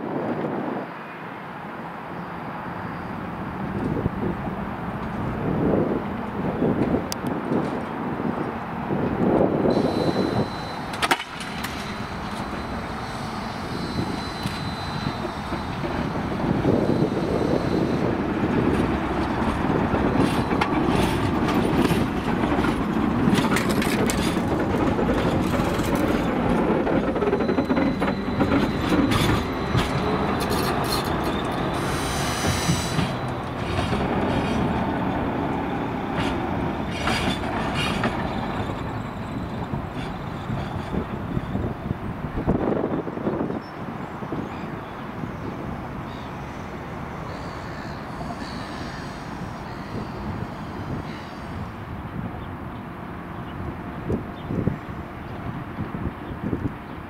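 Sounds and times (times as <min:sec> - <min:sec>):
tram wheels rumbling on rails: 0:02.6 - 0:57.0
wheels clacking over rail joints: 0:06.0 - 0:42.6
high-pitched wheel noise: 0:09.7 - 0:41.7.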